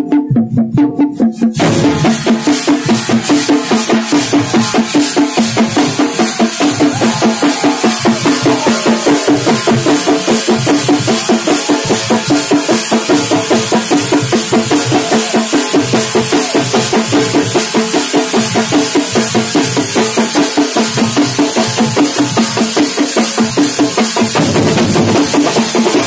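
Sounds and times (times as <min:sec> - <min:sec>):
large drums beaten with sticks: 0:00.0 - 0:26.0
metal hand cymbals clashing: 0:01.6 - 0:26.0.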